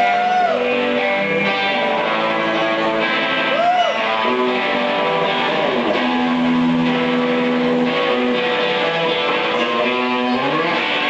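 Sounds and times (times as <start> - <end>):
overdriven electric guitar notes: 0.0 - 11.0.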